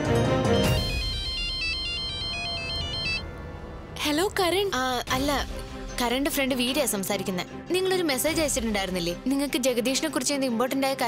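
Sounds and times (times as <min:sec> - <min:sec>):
background score music: 0:00.0 - 0:11.0
phone ringtone beeps: 0:00.5 - 0:03.4.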